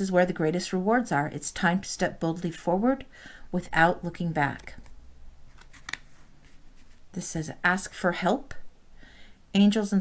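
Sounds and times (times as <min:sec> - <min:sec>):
cards being handled: 0:05.5 - 0:07.0.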